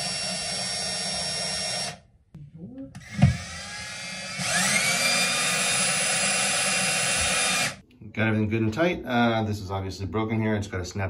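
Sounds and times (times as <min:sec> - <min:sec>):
power drill motor whining: 0:00.0 - 0:02.0, 0:03.0 - 0:07.8
knock: 0:03.2 - 0:03.4.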